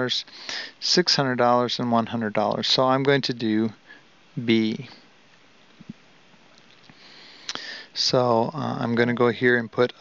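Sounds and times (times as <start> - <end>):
man breathing in through nose: 0.3 - 0.8, 6.9 - 8.0
mouth click: 6.6 - 7.7.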